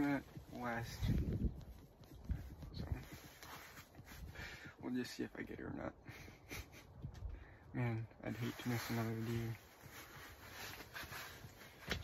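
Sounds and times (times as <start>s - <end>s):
hand rubbing phone microphone: 0.0s - 4.7s, 8.2s - 12.0s.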